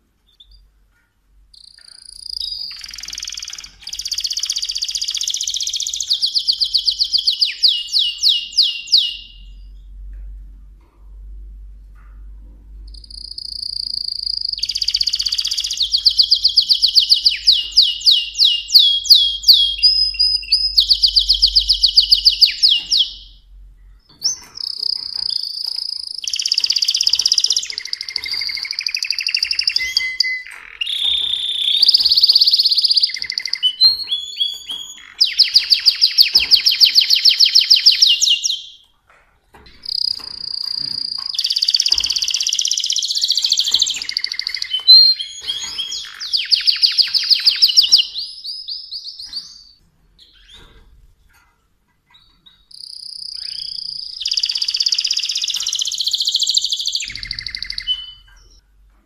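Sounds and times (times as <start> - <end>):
canary singing trills: 1.4 - 10.1, 12.8 - 38.9, 39.6 - 50.9, 52.1 - 58.6.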